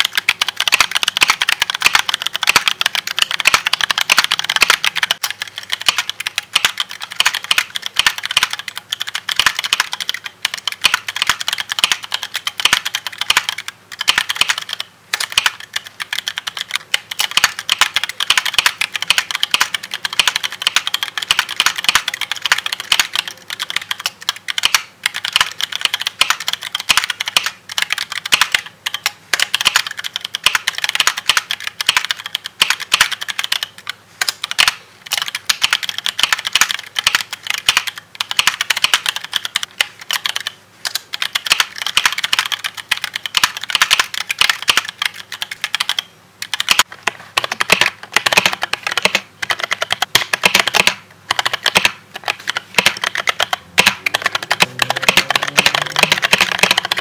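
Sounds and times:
fast typing on mechanical keyboard: 0.0 - 57.0.

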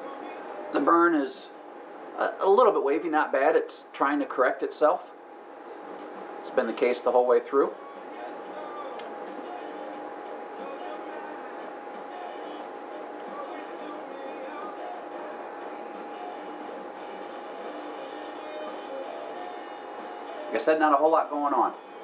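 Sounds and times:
faint high hum: 0.0 - 22.0.

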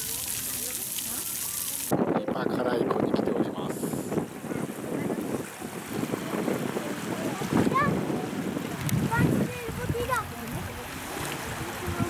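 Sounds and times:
small waves lapping at shore: 0.0 - 1.9, 3.7 - 12.0
wind buffeting microphone: 1.3 - 12.0.

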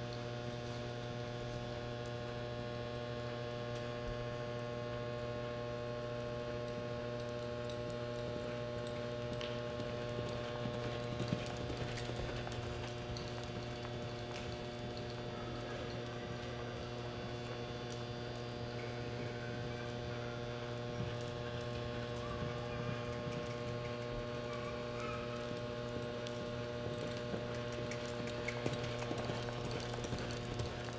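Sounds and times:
electrical hum: 0.0 - 30.9
horse hoofbeats on dirt: 6.6 - 30.9.

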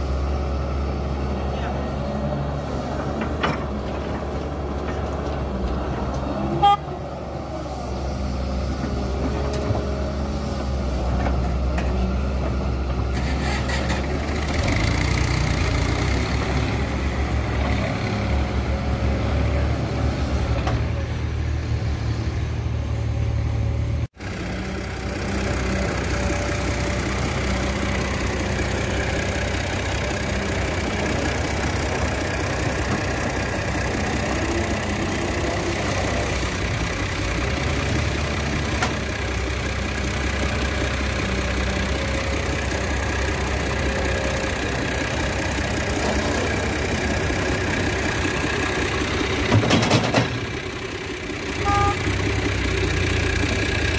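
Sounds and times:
excavator diesel engine running: 0.0 - 53.9.

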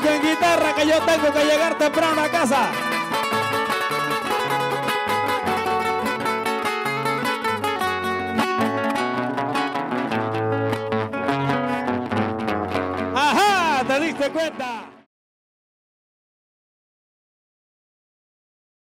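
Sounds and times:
acoustic guitars playing: 0.0 - 15.1.

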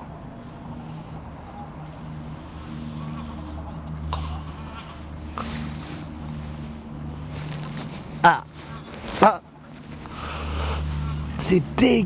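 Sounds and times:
distant engine drone: 0.0 - 12.0.

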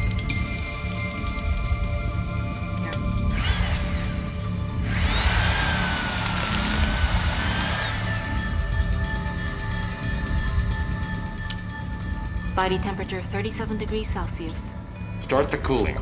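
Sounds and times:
cordless drill whining: 3.3 - 8.7.

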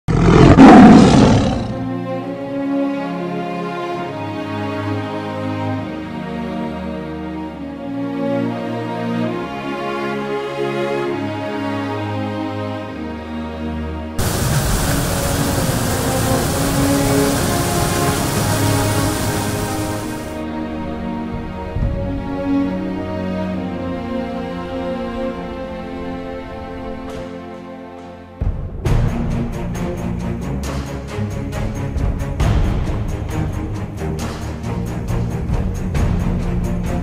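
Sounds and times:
tiger roaring: 0.1 - 1.9
music: 0.4 - 37.0
whitewater rapids rushing: 14.2 - 20.4.

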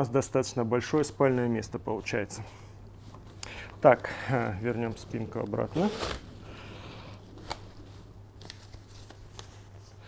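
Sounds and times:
fabric rustling: 3.0 - 6.5.

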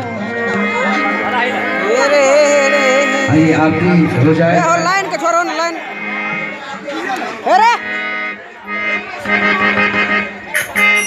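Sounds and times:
harmonium chords: 0.0 - 11.0.

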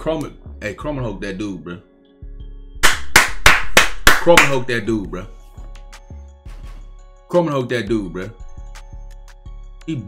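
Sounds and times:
background music: 0.0 - 10.0
hands clapping: 2.8 - 4.8.

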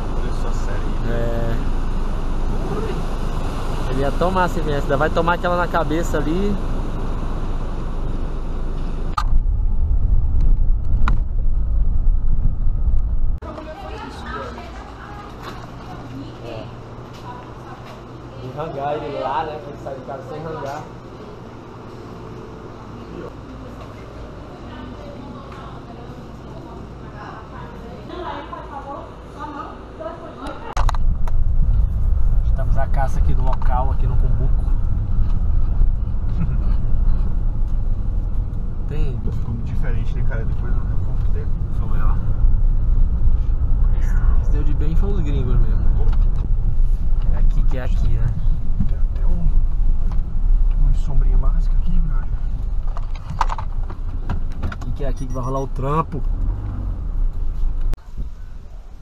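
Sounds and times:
car road and engine rumble: 0.0 - 13.9, 28.3 - 59.0
indistinct voices: 54.8 - 56.4.

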